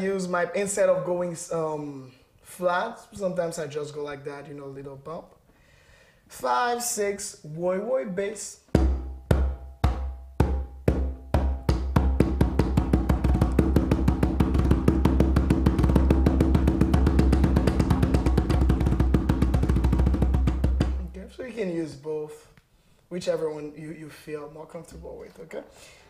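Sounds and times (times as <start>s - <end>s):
conga bass strokes: 8.7s - 21.6s.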